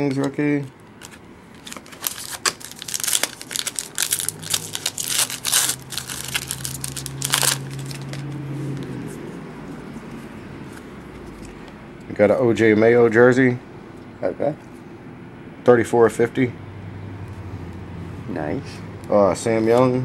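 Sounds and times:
cards being handled: 0:00.9 - 0:11.7
foil wrapper crinkling and tearing: 0:01.0 - 0:08.4.

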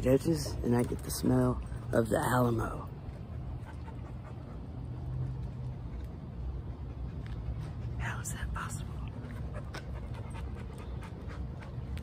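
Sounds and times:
puppy panting: 0:00.0 - 0:02.1, 0:03.0 - 0:08.4, 0:09.0 - 0:12.0.

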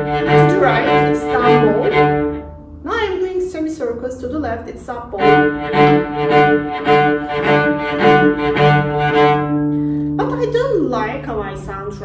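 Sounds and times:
cello staccato notes: 0:00.0 - 0:03.0, 0:04.4 - 0:12.0.

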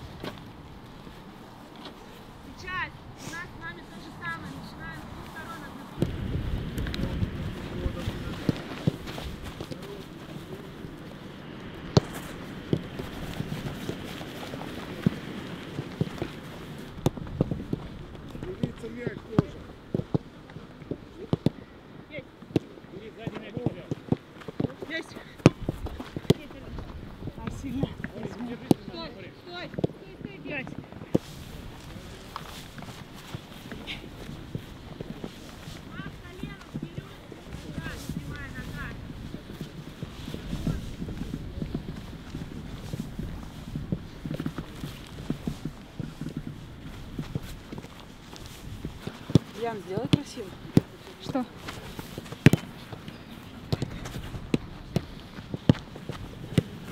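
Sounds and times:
footsteps running on grass: 0:03.6 - 0:11.0, 0:11.7 - 0:19.4, 0:30.4 - 0:56.9.

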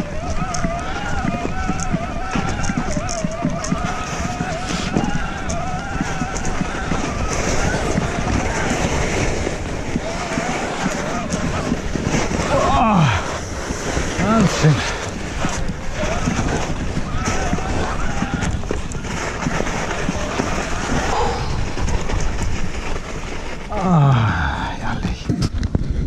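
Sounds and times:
tyres on wet snow: 0:00.0 - 0:25.4
wind on microphone: 0:00.0 - 0:26.0.

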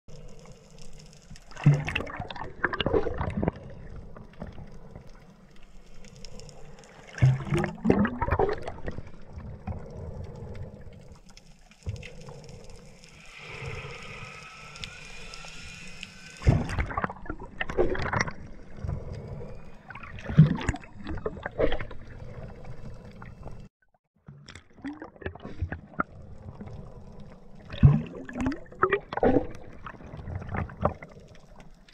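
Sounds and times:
underwater air bubbles bursting: 0:01.5 - 0:04.3, 0:07.1 - 0:10.8, 0:16.4 - 0:23.7, 0:27.6 - 0:31.6.

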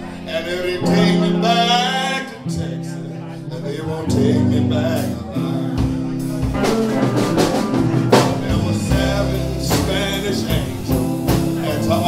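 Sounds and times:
electric bass notes: 0:00.0 - 0:12.0
electric guitar: 0:00.0 - 0:12.0
drum kit: 0:04.6 - 0:12.0.

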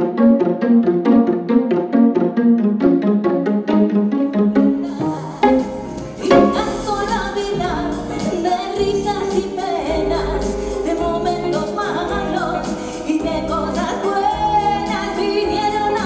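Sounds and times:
live keyboard and guitar band: 0:04.7 - 0:16.0.

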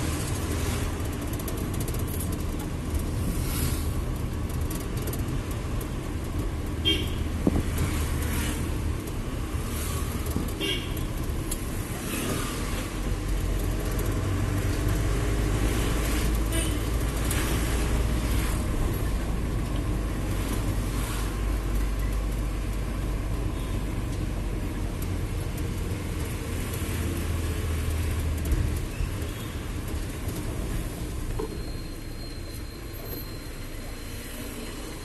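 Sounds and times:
engine and road rumble: 0:00.0 - 0:35.0.

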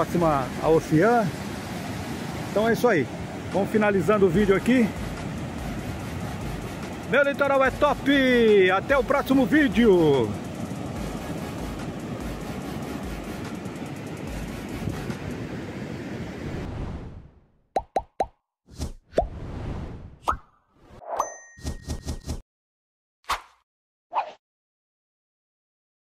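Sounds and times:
ocean waves breaking: 0:00.0 - 0:17.3
short ding: 0:21.2 - 0:22.0.

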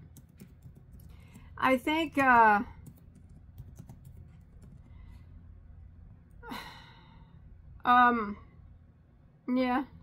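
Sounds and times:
woman sighing: 0:06.4 - 0:07.2.

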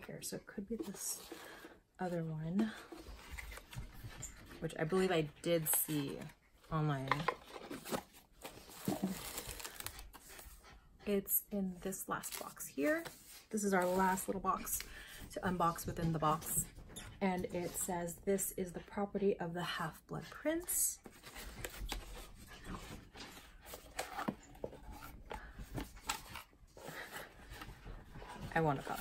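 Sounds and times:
packaging rustling and crinkling: 0:07.0 - 0:10.6.

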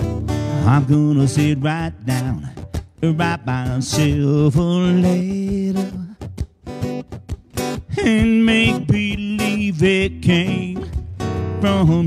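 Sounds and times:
choppy guitar strumming: 0:00.0 - 0:12.0.

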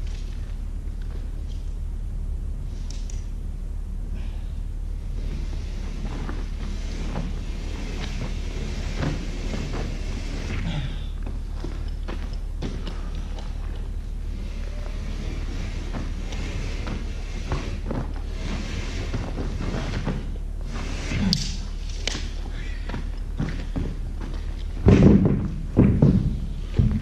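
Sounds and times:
steady low hum: 0:00.0 - 0:27.0
footsteps on dirt floor: 0:05.1 - 0:27.0
scraping and tapping drywall: 0:05.2 - 0:27.0.

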